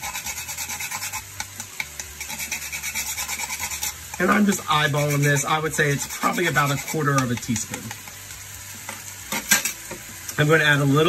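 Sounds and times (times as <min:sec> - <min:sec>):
nutmeg grated on rasp grater: 0:00.0 - 0:08.3.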